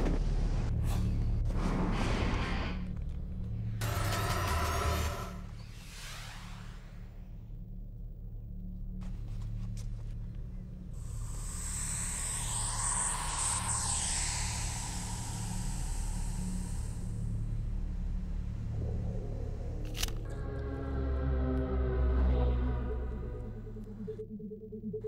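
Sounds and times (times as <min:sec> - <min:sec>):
low steady drone: 0:07.3 - 0:25.0
hissing swell: 0:11.0 - 0:17.8.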